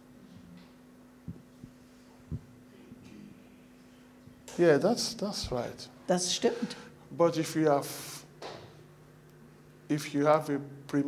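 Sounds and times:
steady low hum: 0.0s - 11.0s
soft low thumps: 1.2s - 2.6s.

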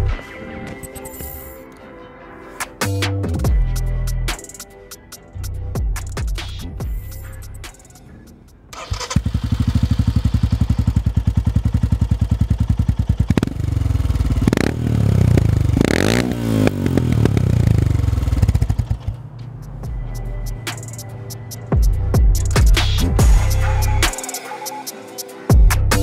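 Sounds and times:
motorcycle engine idling: 6.9s - 23.6s
motorcycle engine revving: 7.9s - 20.7s.

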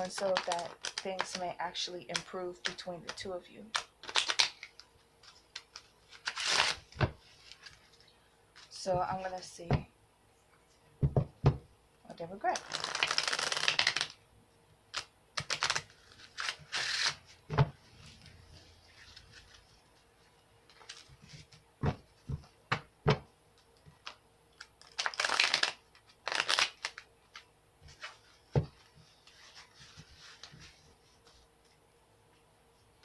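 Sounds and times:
cards shuffling: 0.0s - 1.5s, 2.1s - 8.0s, 12.6s - 14.2s, 14.9s - 17.3s, 23.6s - 31.8s.

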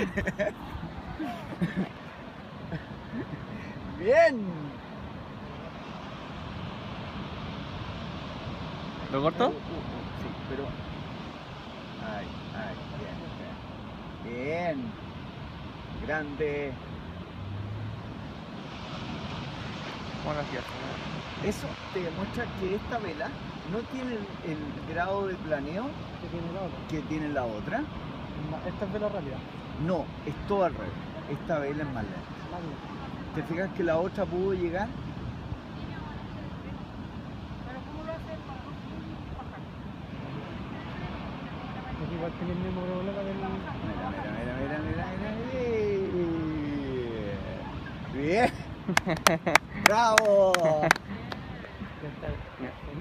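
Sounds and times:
surf breaking on beach: 0.0s - 53.0s
wind on microphone: 0.0s - 53.0s.

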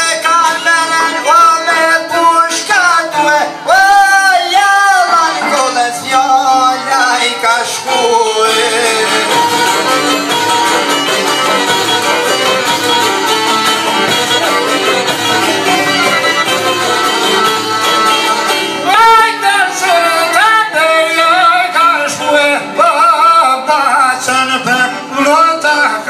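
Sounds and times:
man singing: 0.0s - 10.6s, 18.8s - 26.0s
plucked lutes: 5.3s - 20.9s
violin playing: 5.4s - 20.6s.

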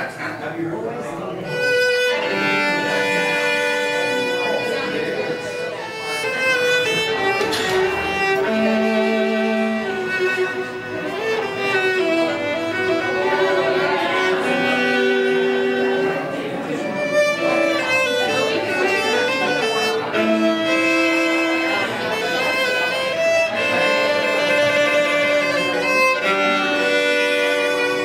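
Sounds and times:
solo violin with vibrato: 1.0s - 28.0s.

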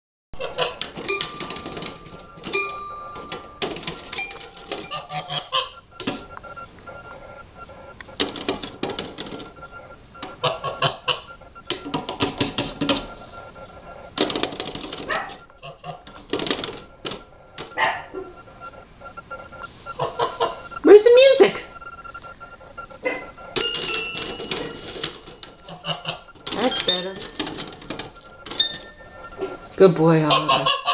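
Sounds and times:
toy piano keys plinking: 0.8s - 5.7s, 23.6s - 25.7s, 26.4s - 30.2s.

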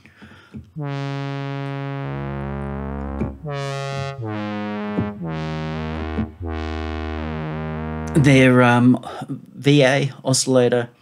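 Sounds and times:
deep bass note: 0.8s - 8.6s
synthesizer chords: 0.8s - 8.6s.

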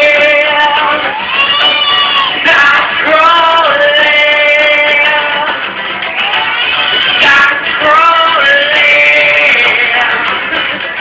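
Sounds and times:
man singing long notes: 0.0s - 5.7s, 6.8s - 10.7s.

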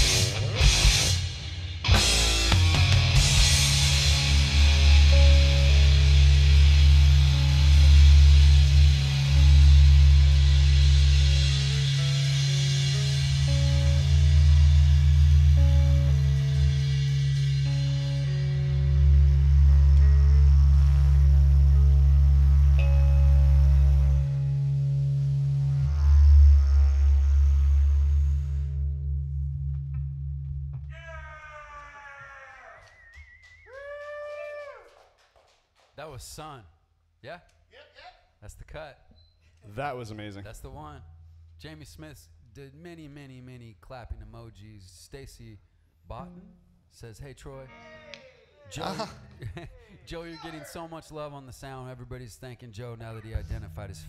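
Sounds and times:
live rock band: 0.0s - 14.5s
didgeridoo drone: 0.0s - 30.9s, 53.2s - 54.0s.

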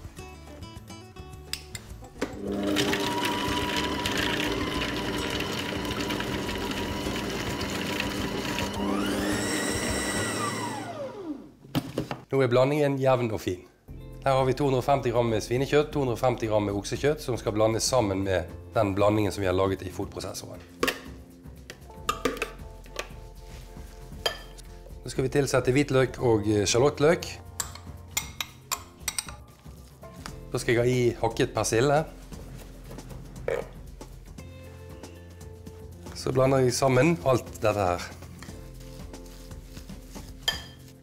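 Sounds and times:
soft background music: 0.0s - 11.4s, 12.4s - 41.0s
spoon clinking against bowl: 24.3s - 24.6s, 27.6s - 29.4s, 40.4s - 40.8s
spoon scraping meat mixture in bowl: 38.2s - 41.0s
knocks and scrapes in bowl: 40.1s - 40.9s.

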